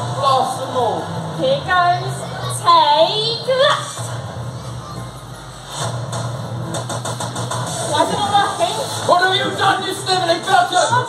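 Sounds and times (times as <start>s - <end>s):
deep rumble: 0.0s - 10.4s.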